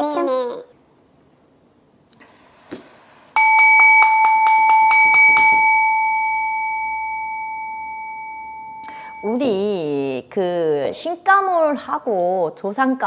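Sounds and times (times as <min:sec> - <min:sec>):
small metal bell ringing: 0:03.4 - 0:10.1.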